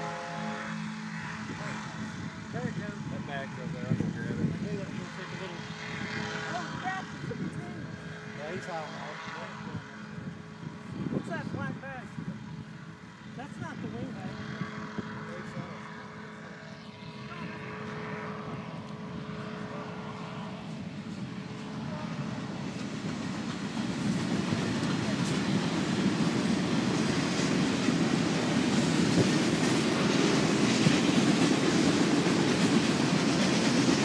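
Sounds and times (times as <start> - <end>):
distant engine and propeller drone: 0.0 - 34.0.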